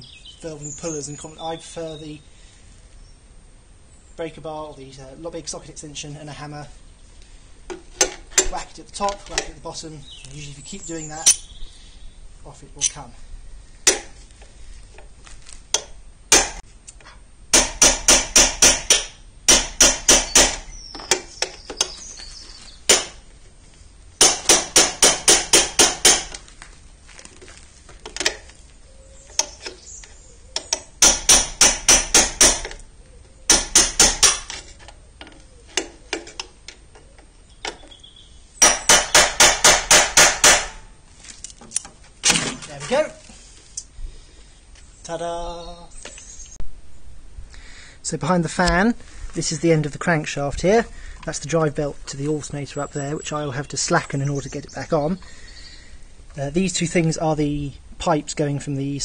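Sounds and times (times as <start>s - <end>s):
hammer striking steel: 15.8s - 16.6s, 17.5s - 20.7s, 22.9s - 23.2s, 24.2s - 26.4s, 31.0s - 32.8s, 33.5s - 34.5s, 38.6s - 40.9s.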